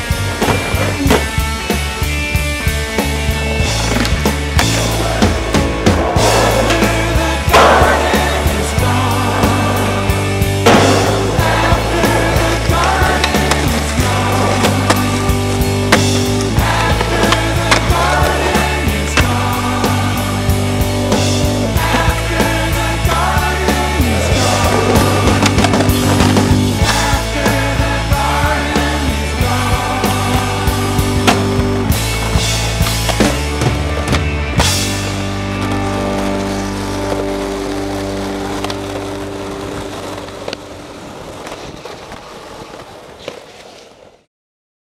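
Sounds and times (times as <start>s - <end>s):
rock music: 0.0s - 40.8s
skateboard wheels rolling on concrete: 0.0s - 44.3s
skateboard pop: 3.8s - 20.4s, 31.2s - 33.4s.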